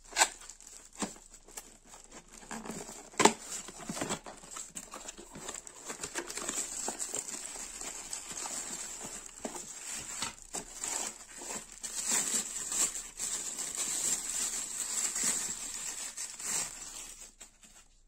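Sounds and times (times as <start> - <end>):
plastic bags crinkling: 0.0 - 18.0.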